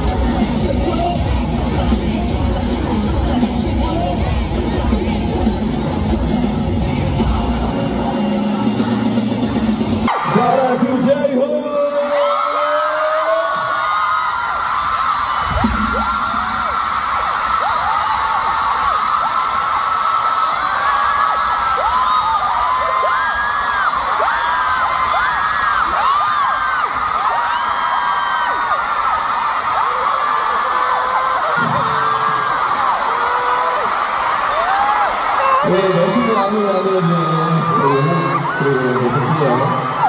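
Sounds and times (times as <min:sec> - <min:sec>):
crowd screaming and cheering: 0:00.0 - 0:40.0.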